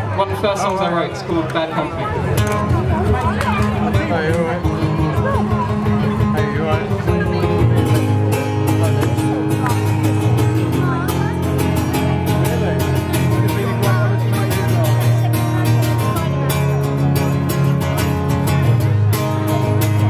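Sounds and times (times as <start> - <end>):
acoustic guitar strumming chords: 2.2 - 20.0.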